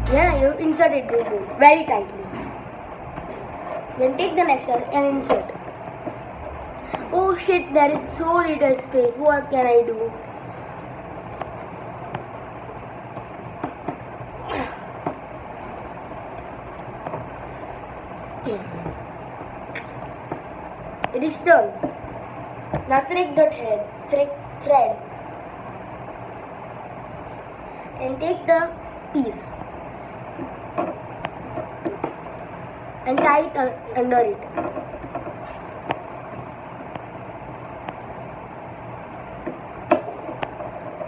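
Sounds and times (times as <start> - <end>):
background hiss: 0.0 - 41.0.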